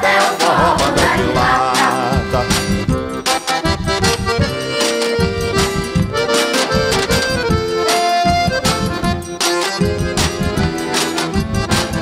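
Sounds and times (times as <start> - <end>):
accordion melody: 0.0 - 12.0
tin-can percussion beat: 0.0 - 12.0.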